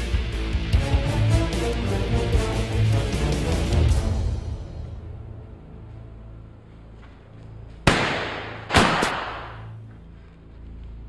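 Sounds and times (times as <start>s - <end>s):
pistol shots echoing: 7.9s - 9.8s.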